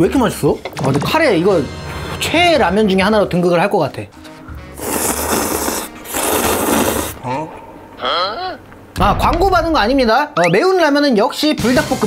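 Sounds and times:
person slurping noodles: 0:04.8 - 0:07.2.

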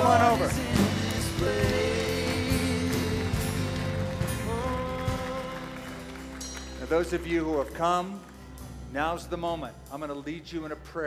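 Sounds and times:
worship band music: 0:00.0 - 0:11.0.

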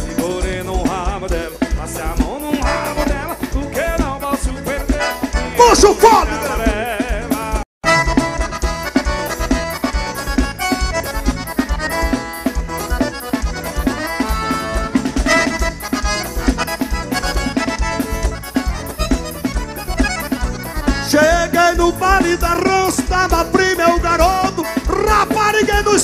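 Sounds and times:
accordion melody: 0:00.0 - 0:26.0
steady drum beat: 0:00.0 - 0:26.0.

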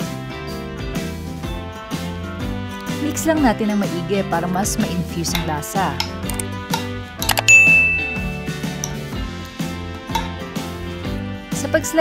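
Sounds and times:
background music: 0:00.0 - 0:12.0
bell-like ding: 0:07.4 - 0:08.8.

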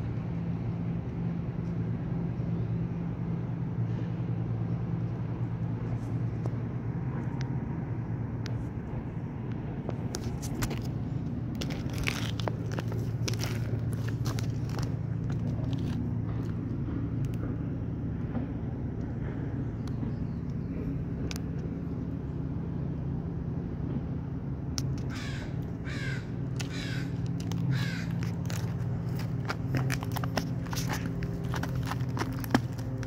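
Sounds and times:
steady low hum: 0:00.0 - 0:33.0
twigs snapping: 0:11.5 - 0:16.5, 0:26.5 - 0:33.0
footsteps on forest litter: 0:11.6 - 0:16.4, 0:26.5 - 0:33.0
crow cawing: 0:25.1 - 0:28.2.

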